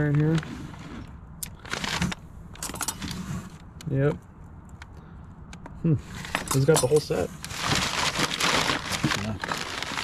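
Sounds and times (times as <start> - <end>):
metal cutlery clinking in tray: 6.4 - 7.2.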